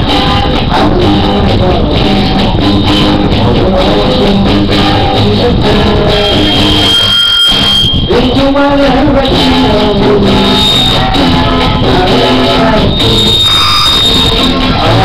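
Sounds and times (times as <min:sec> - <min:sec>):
karaoke music: 0:00.0 - 0:15.0
man singing into microphone: 0:00.0 - 0:15.0.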